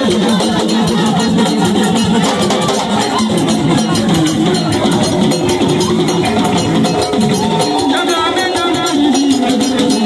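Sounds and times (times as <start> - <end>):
bell: 0.0 - 10.0
loud percussion: 0.0 - 10.0
man singing into microphone: 7.6 - 10.0.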